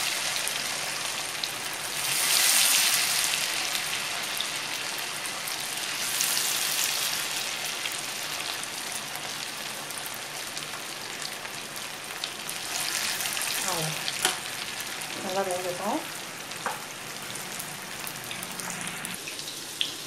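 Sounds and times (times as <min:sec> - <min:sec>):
oil sizzling while deep-frying: 0:00.0 - 0:20.0.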